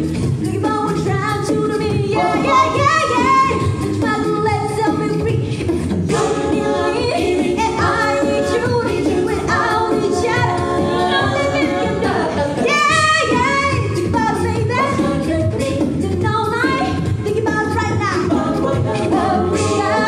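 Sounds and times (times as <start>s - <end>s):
female lead singing: 0.4s - 5.5s, 6.1s - 20.0s
backing vocal harmonies: 0.7s - 20.0s.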